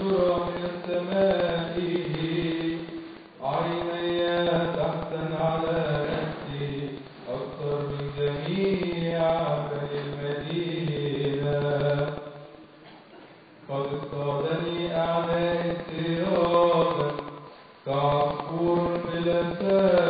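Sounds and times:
man chanting: 0.0s - 12.6s, 13.6s - 20.0s.

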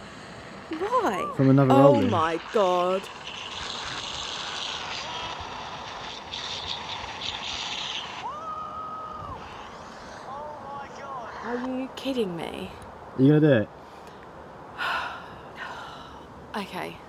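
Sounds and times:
wind rushing over microphone: 0.0s - 12.1s
bike tyre noise: 1.4s - 11.6s.

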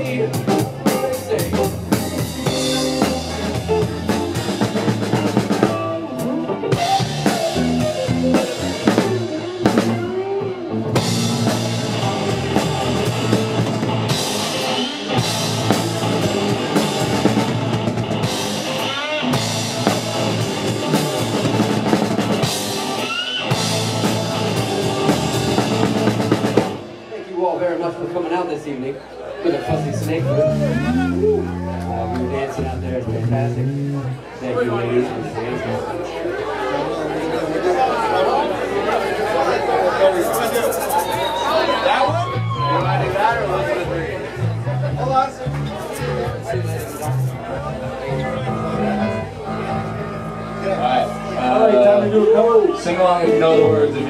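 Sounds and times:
live rock band playing: 0.0s - 27.4s, 29.3s - 36.6s, 38.5s - 54.0s
drums: 0.0s - 34.5s, 38.5s - 54.0s.

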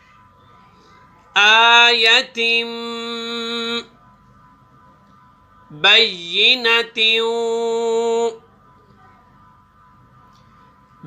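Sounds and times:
man chanting melodically: 1.3s - 4.0s, 5.6s - 8.4s.

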